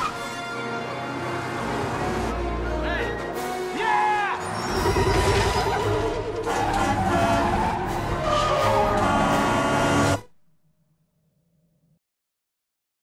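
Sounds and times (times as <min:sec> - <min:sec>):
dramatic music: 0:00.0 - 0:10.4
heavy vehicle rumble: 0:04.8 - 0:10.2.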